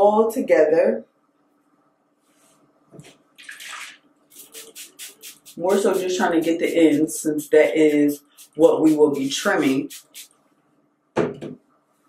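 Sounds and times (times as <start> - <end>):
spray bottle spritzing water: 3.6 - 10.3.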